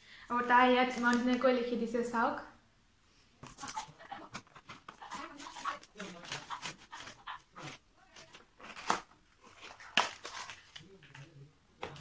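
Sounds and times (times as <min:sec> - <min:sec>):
paper tearing and crinkling: 0:03.5 - 0:11.2.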